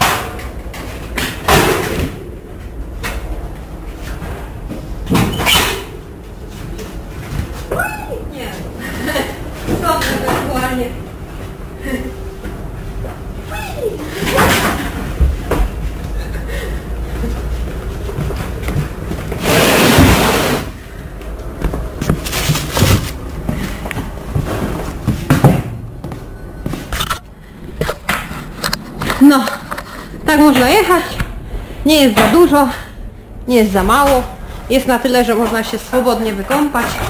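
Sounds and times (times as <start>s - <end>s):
voices: 13.4s - 14.9s, 31.9s - 37.0s
loud rushing noise: 19.3s - 20.9s.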